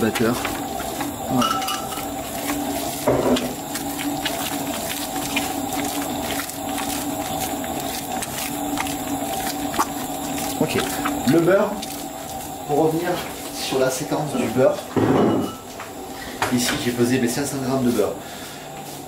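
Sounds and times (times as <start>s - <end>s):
stand mixer humming: 0.0s - 14.8s.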